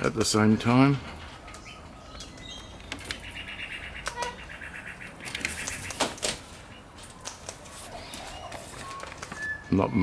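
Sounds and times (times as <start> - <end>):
birds chattering in trills: 0.0 - 7.2, 7.8 - 10.0.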